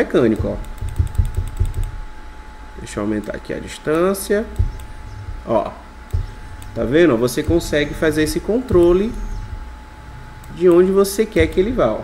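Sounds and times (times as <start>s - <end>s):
light clicks: 3.2s - 5.4s, 6.1s - 6.8s, 10.4s - 11.7s
stepper motors moving: 3.2s - 12.0s.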